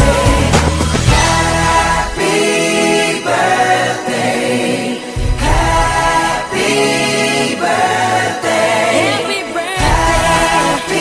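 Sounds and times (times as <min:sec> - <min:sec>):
bass: 0:00.0 - 0:02.5
choir singing held chords: 0:00.0 - 0:11.0.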